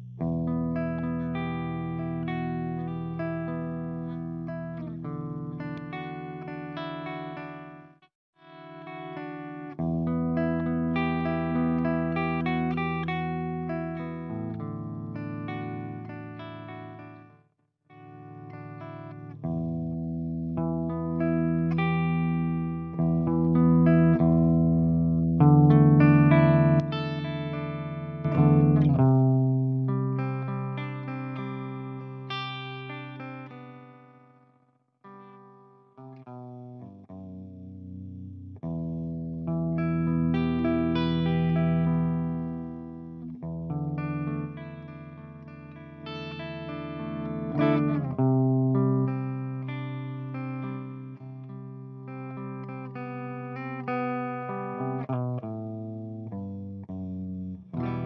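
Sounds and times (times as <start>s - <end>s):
clean electric guitar chords: 0.0s - 58.0s.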